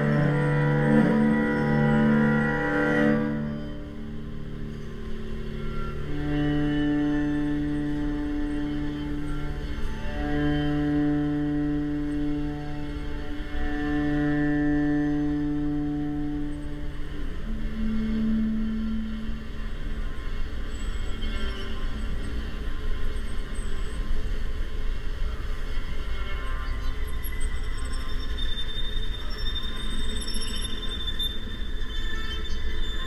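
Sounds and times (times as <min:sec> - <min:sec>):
string quartet long notes: 0:00.0 - 0:23.2
low hum: 0:00.0 - 0:30.0.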